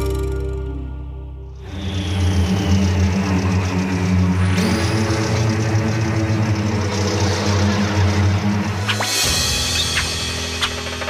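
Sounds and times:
engine running: 1.6 - 11.0.

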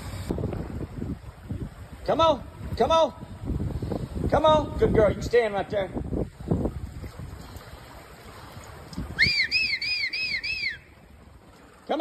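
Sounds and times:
water sloshing and splashing: 0.0 - 4.2, 6.0 - 12.0
high whistled notes: 9.2 - 10.9.

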